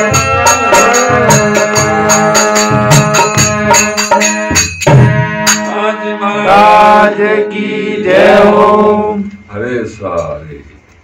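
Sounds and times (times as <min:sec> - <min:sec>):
man singing: 0:00.0 - 0:03.8
harmonium reed tone: 0:00.0 - 0:10.5.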